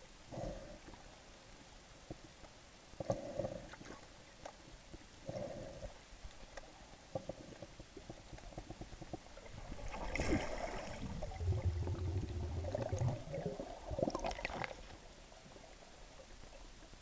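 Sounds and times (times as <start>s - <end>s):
underwater gurgling: 7.1s - 17.0s
low hum: 9.4s - 15.0s.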